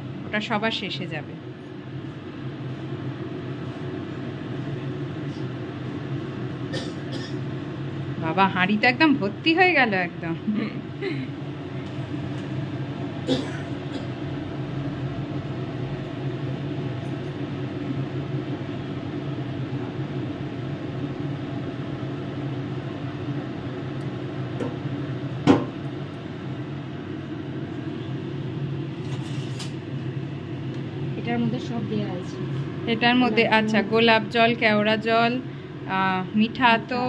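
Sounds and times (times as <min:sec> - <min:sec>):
low mechanical hum: 0:00.0 - 0:37.0.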